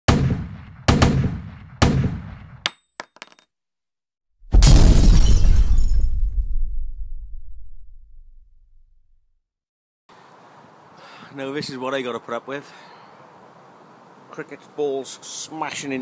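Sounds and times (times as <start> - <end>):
deep rumbling boom: 4.5 - 8.7.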